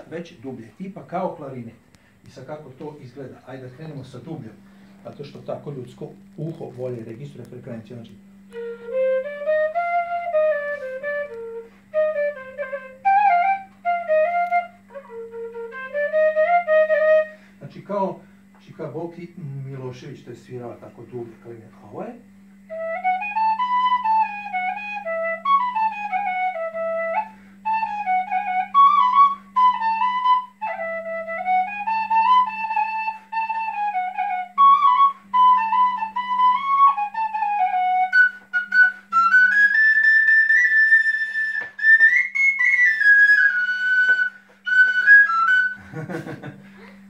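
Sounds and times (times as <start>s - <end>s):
wooden flute melody: 8.3s - 17.5s, 22.6s - 46.2s.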